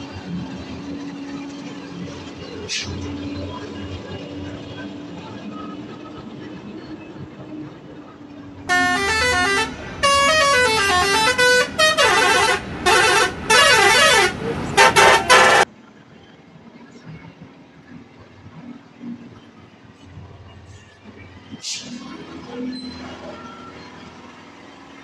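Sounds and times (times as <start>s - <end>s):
engine and road rumble: 0.0s - 25.0s
truck musical horn blasts: 8.7s - 15.7s.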